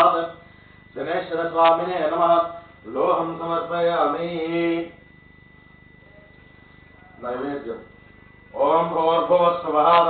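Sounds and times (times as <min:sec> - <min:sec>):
high-pitched whine: 0:00.0 - 0:10.0.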